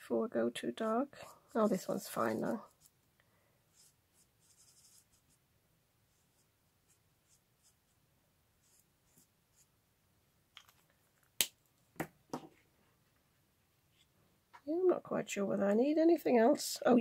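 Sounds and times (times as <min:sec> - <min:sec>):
marker scratching on card: 0:01.5 - 0:03.0, 0:03.7 - 0:05.4.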